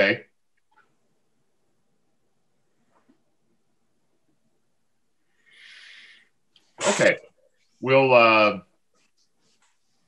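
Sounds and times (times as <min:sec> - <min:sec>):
person sneezing: 0:06.8 - 0:07.2.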